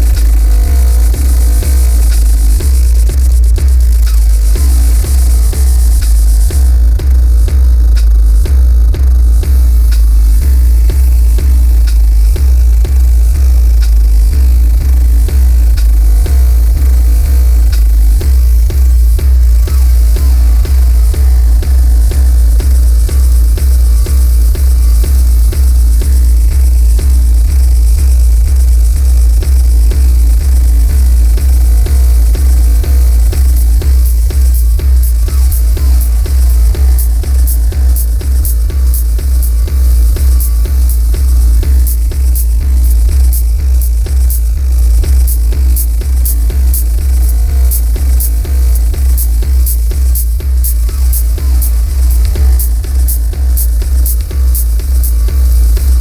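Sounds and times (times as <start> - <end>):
sharp high ticks: 0.0 - 56.0
techno music with heavy bass beat: 0.0 - 56.0.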